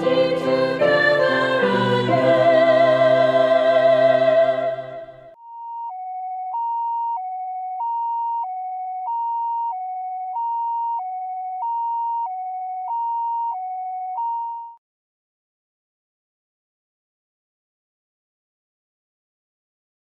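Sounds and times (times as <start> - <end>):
two-tone ambulance siren: 4.1 - 14.8.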